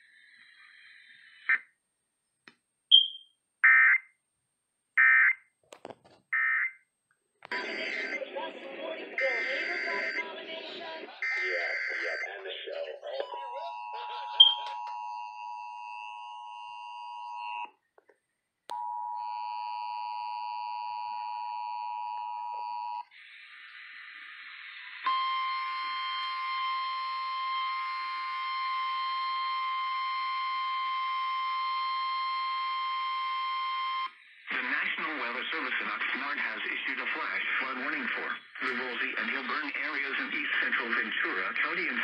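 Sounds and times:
radio hiss: 0:00.0 - 0:01.6, 0:07.4 - 0:14.7, 0:23.1 - 0:25.1, 0:34.2 - 0:42.0
rich steady tone: 0:07.5 - 0:17.8.

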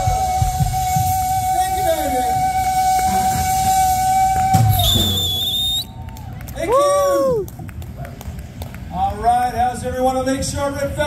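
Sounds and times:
high steady whistle: 0:00.0 - 0:06.0.

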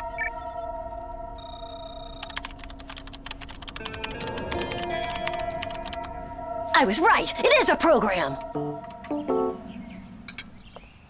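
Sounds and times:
short electronic beeps: 0:00.0 - 0:00.7, 0:01.4 - 0:02.4
keyboard typing clicks: 0:01.4 - 0:06.1
background music with held tones: 0:03.8 - 0:10.1.

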